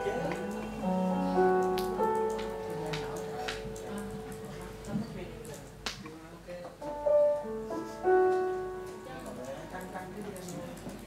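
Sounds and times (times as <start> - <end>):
slow piano notes and chords: 0.0 - 11.0.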